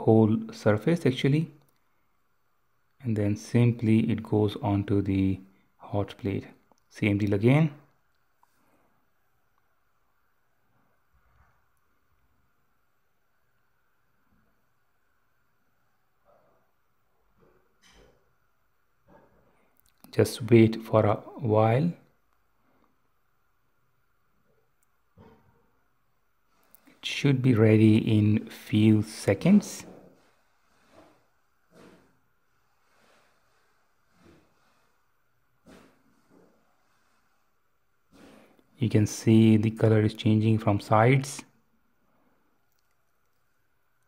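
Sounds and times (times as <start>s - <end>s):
faint soft sounds: 0.0s - 44.0s.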